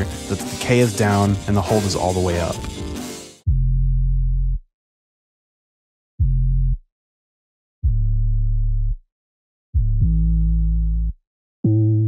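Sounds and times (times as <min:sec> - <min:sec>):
sustained bass notes: 0:00.0 - 0:04.6, 0:06.2 - 0:06.8, 0:07.8 - 0:09.0, 0:09.8 - 0:12.0.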